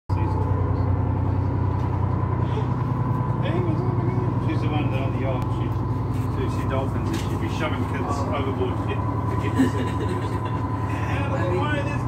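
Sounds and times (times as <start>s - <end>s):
boat engine low drone: 0.1s - 12.0s
thin steady whine: 0.1s - 12.0s.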